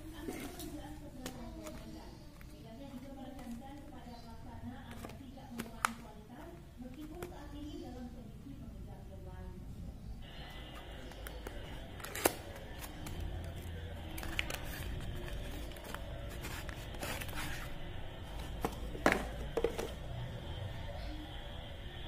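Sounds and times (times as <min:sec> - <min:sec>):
cardboard box rustling and scraping: 0:14.2 - 0:17.8.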